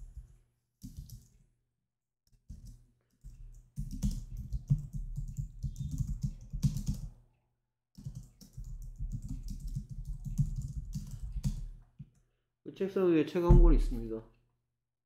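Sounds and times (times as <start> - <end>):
typing on computer keyboard: 0.8 - 1.3, 2.5 - 7.1, 8.0 - 11.7.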